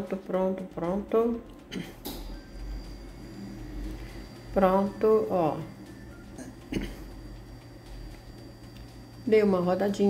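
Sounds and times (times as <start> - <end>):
low steady hum and rumble: 0.0 - 10.0
thin high whine: 1.8 - 10.0.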